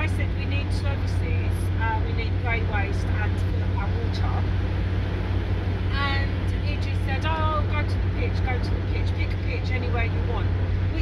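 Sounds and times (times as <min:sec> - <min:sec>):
engine and road noise drone: 0:00.0 - 0:11.0.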